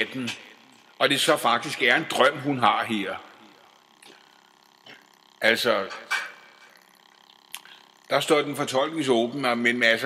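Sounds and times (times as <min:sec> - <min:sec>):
mouth click: 0:07.5 - 0:07.8.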